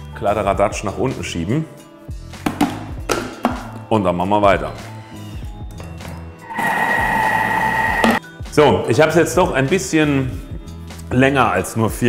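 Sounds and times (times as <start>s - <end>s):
food processor motor whining: 6.4s - 8.2s.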